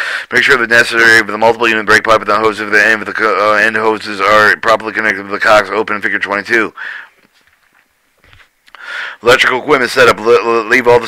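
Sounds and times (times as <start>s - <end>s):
faint breath drawn in: 0.0s - 0.3s, 6.8s - 7.2s, 8.7s - 9.2s.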